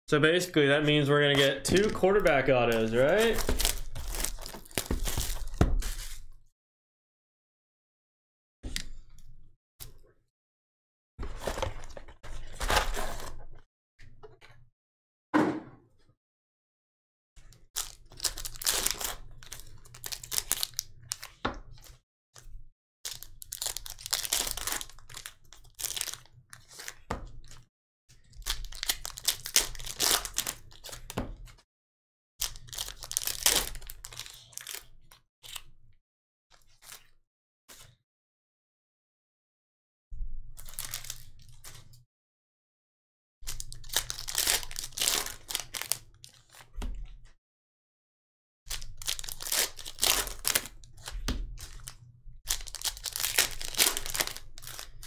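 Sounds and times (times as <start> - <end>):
foil packs crinkling and tearing: 1.6 - 6.3, 17.8 - 21.4, 23.1 - 27.6, 28.3 - 31.1, 32.4 - 34.9, 40.6 - 41.8, 43.4 - 46.7, 48.7 - 55.0.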